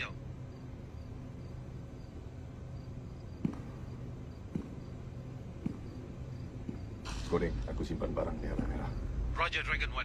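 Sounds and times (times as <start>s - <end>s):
low steady hum: 0.0s - 10.0s
soft footsteps: 3.4s - 7.0s.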